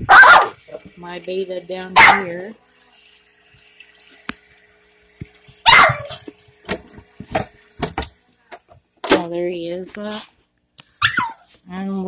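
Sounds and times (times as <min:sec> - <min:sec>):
aquarium water noise: 0:00.0 - 0:12.0
dog barking: 0:00.1 - 0:00.6, 0:02.0 - 0:02.3, 0:05.6 - 0:06.2, 0:11.0 - 0:11.4.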